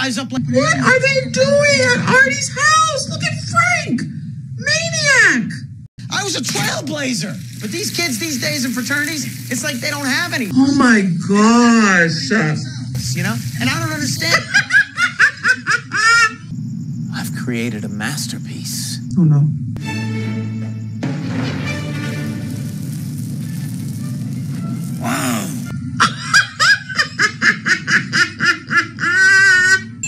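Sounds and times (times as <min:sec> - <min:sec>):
woman laughing: 0:14.2 - 0:16.4, 0:26.0 - 0:29.8.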